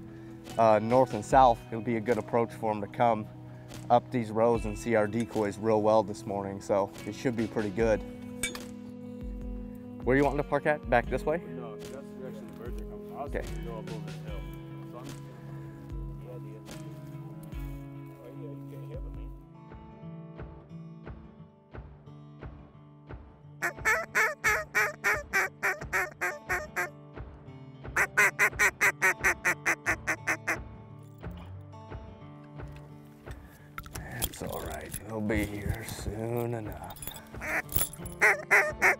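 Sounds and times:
background music with beat: 3.6s - 38.9s
duck quacks: 23.6s - 26.9s, 28.0s - 30.6s, 38.2s - 38.9s.

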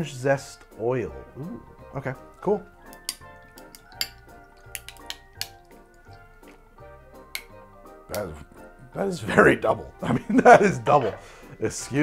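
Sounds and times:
background music with steady beat: 0.0s - 12.0s
drink pouring over ice: 2.7s - 6.4s
ice clicks and clinks: 2.9s - 6.2s.

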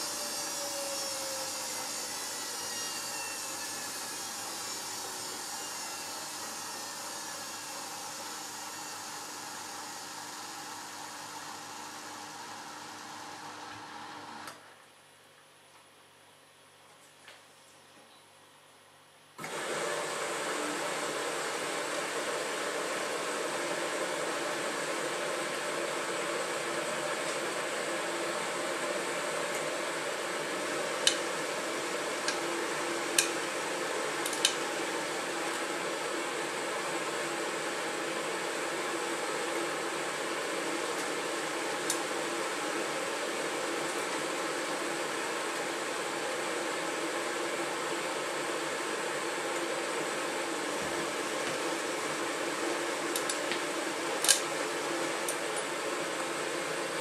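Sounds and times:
washing machine whirring: 0.0s - 14.8s, 19.4s - 57.0s.

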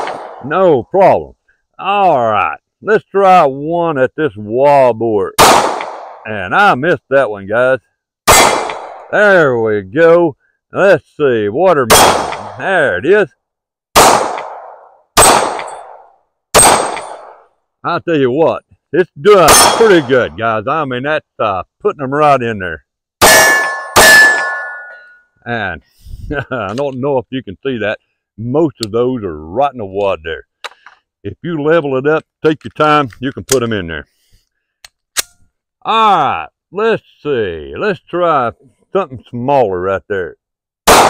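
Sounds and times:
pistol shots with echo: 0.0s - 0.4s, 5.4s - 6.3s, 8.3s - 9.1s, 11.9s - 12.7s, 14.0s - 17.4s, 19.4s - 20.2s, 23.2s - 25.0s
pistol metallic clicks: 14.2s - 16.0s, 34.8s - 35.4s.

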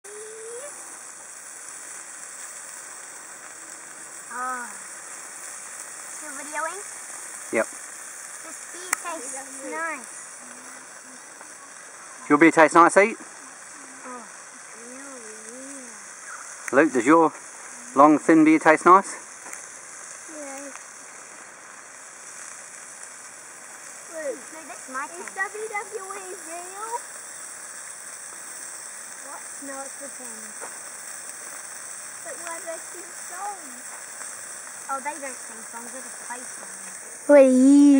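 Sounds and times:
high outdoor hiss: 0.0s - 37.9s
sausages sizzling in a frying pan: 0.0s - 37.9s.

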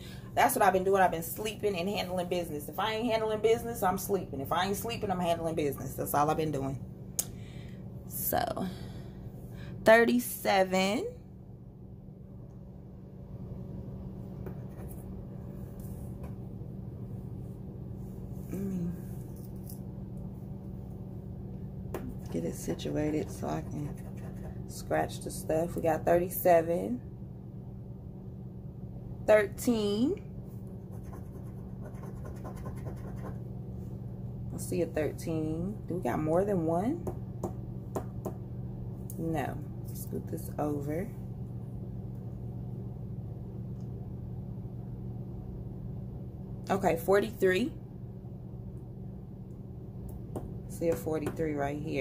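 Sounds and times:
heater humming: 0.0s - 52.0s.

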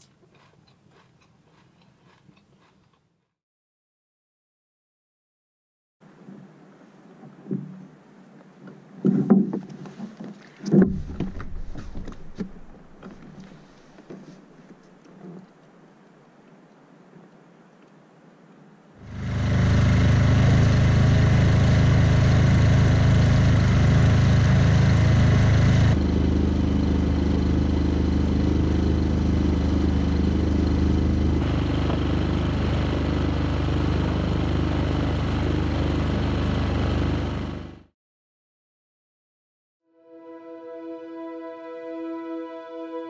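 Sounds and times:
outboard motor running: 19.0s - 37.9s.

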